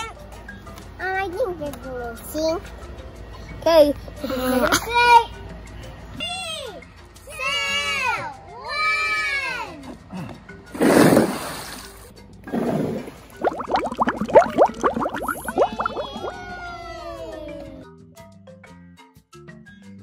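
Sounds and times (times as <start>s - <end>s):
music: 0.0s - 20.0s
balls splashing into pool: 12.5s - 16.4s
underwater bubbling chirps: 12.5s - 16.5s.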